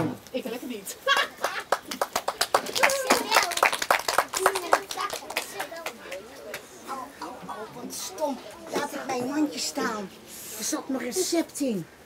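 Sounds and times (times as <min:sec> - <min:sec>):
voices talking: 0:00.4 - 0:12.0
audience clapping: 0:01.4 - 0:06.6.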